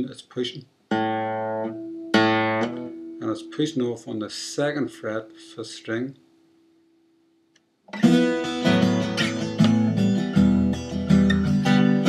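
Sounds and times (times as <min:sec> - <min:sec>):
acoustic guitar strings ringing: 0:00.9 - 0:03.8, 0:07.9 - 0:12.0.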